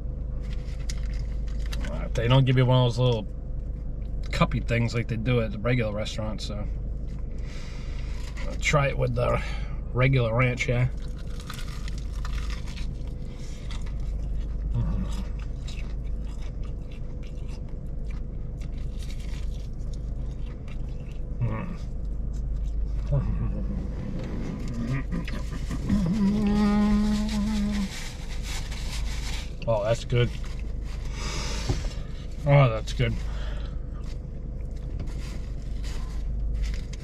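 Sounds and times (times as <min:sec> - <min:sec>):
steady low rumble: 0:00.0 - 0:37.0
man chewing crispy food: 0:00.3 - 0:02.1, 0:07.0 - 0:08.6, 0:10.9 - 0:23.7, 0:24.6 - 0:32.5, 0:33.1 - 0:37.0
man humming mmm: 0:14.7 - 0:15.2, 0:21.4 - 0:21.9, 0:23.0 - 0:24.0, 0:24.7 - 0:28.0.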